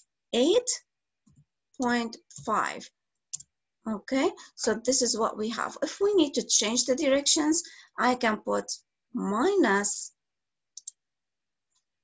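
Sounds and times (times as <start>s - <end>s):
computer mouse clicks: 10.8s - 11.0s.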